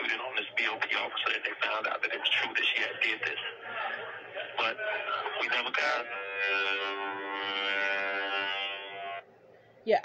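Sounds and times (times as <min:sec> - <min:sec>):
steady drone rich in overtones: 0:04.6 - 0:09.2.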